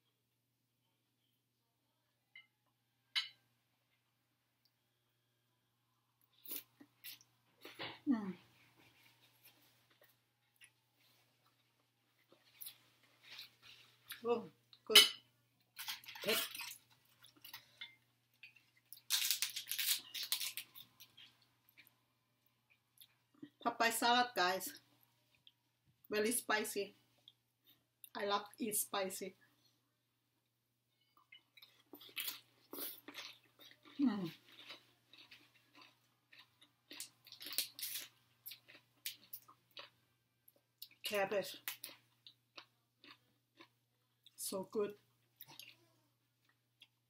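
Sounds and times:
person chewing food: 8.6s - 14.8s, 15.6s - 23.5s, 30.9s - 41.0s, 41.6s - 44.4s, 45.1s - 47.0s
crunchy chewing: 31.1s - 41.0s, 41.6s - 44.4s.

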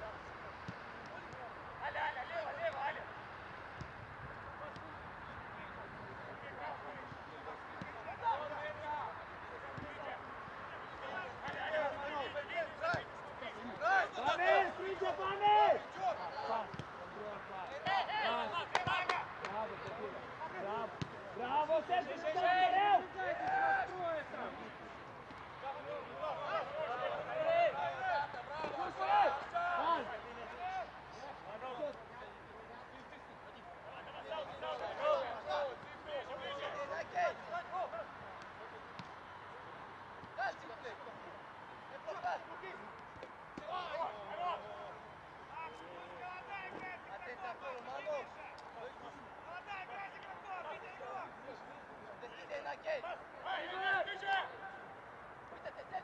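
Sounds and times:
footballers shouting: 0.0s - 56.0s
ball being kicked: 16.6s - 17.0s.

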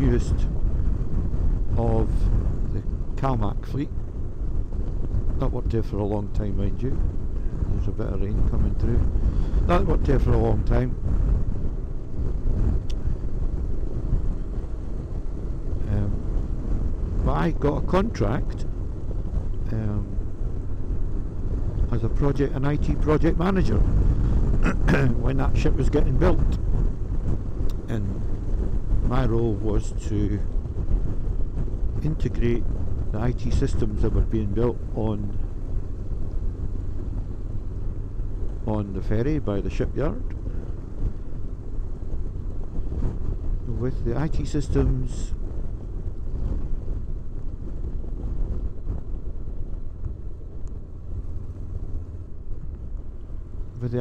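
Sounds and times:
motorcycle engine running: 0.0s - 54.0s
road noise: 0.0s - 54.0s
wind on microphone: 0.0s - 54.0s.

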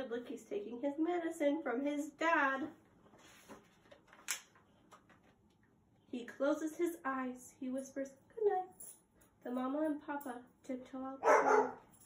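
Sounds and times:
paper rustle: 3.1s - 5.4s.

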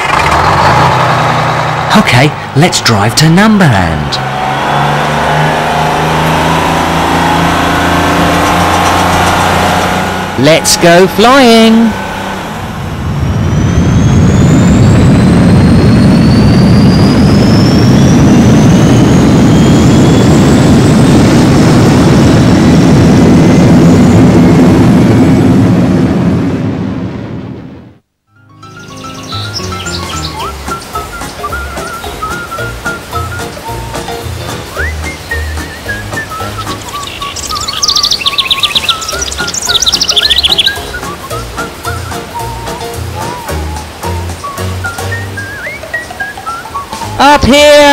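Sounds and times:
aircraft take-off rushing whine: 0.0s - 47.9s
background music: 28.3s - 47.9s
bird-like tweets: 28.6s - 47.4s.

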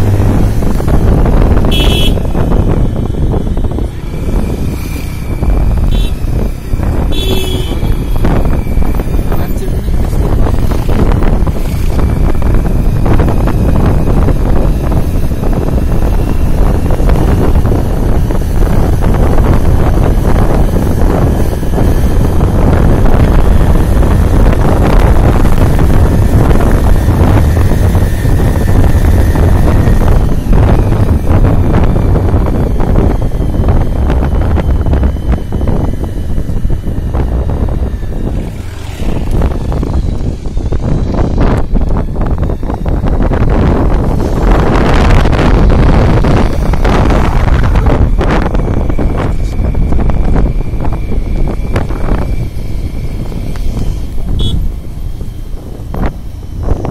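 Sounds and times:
motorbike engine: 0.0s - 56.9s
wind rumble on microphone: 0.0s - 56.9s.

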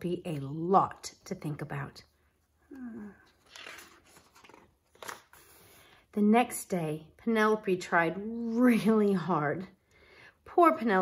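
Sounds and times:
book pages turning: 2.7s - 5.7s.

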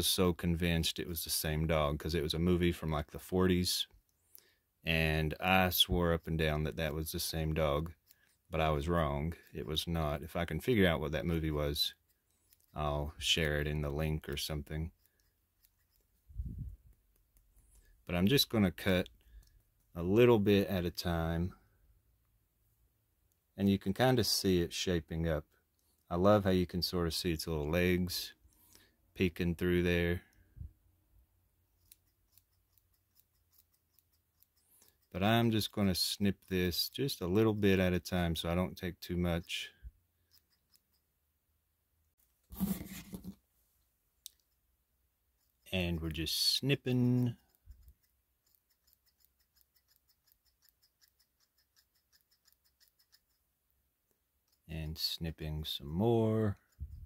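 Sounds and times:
scissors snipping fur: 31.8s - 35.1s, 47.4s - 53.4s.

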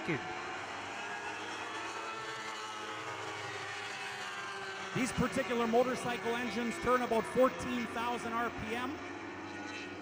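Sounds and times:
race car engines running at speed: 0.0s - 10.0s.

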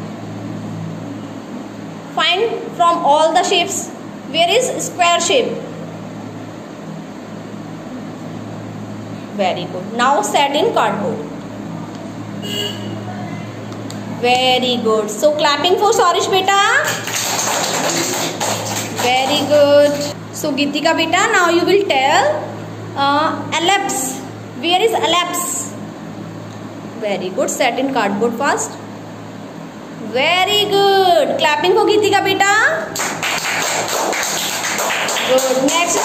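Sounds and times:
person speaking: 14.3s - 25.8s
hands clapping in applause: 16.8s - 20.2s, 33.0s - 36.0s.

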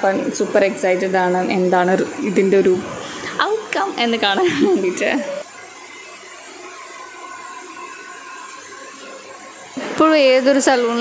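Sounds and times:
hair dryer blowing: 0.0s - 11.0s.

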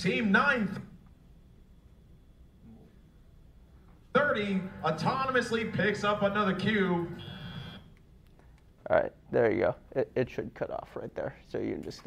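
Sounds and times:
high electronic buzzer tone: 4.8s - 7.9s.

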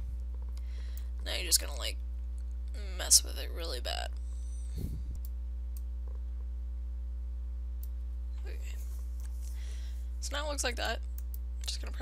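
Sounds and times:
low electrical hum: 0.0s - 12.0s
low bump: 4.8s - 5.2s.

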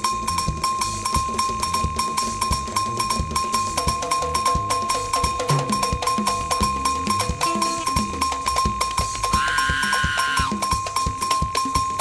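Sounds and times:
conga drums: 0.0s - 12.0s
cowbell struck fast: 0.0s - 12.0s
pitched percussion part: 0.0s - 12.0s.

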